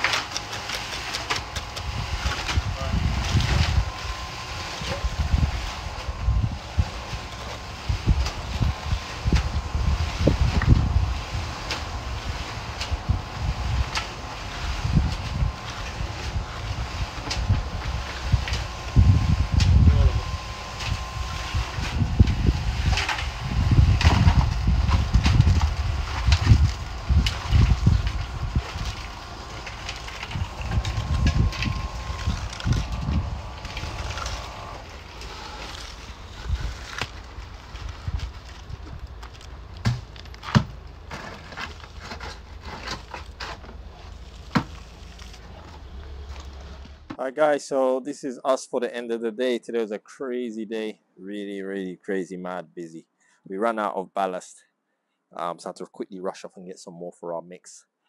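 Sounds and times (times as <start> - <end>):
faint steady hum: 0.0 - 48.2
low rumble: 1.4 - 47.1.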